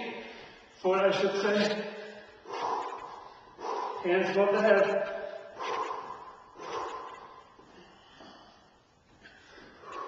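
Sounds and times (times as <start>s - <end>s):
man breathing hard: 2.0s - 4.2s, 5.1s - 10.0s.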